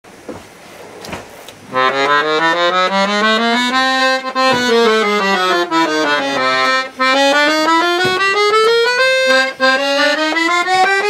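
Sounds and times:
piano accordion melody: 0:01.7 - 0:11.0
handling knocks and rustles: 0:04.3 - 0:09.8.

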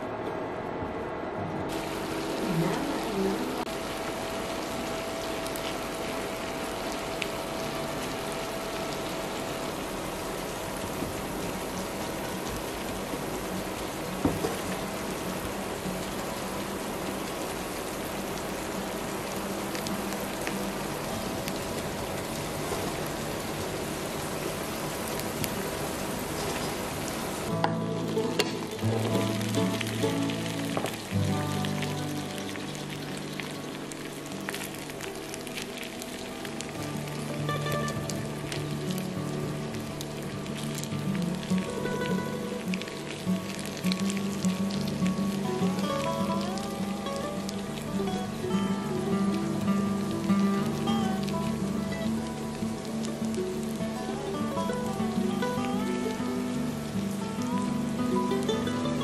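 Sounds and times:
vegetables sizzling in frying pan: 0:04.0 - 0:59.0
background music: 0:27.5 - 0:33.1.

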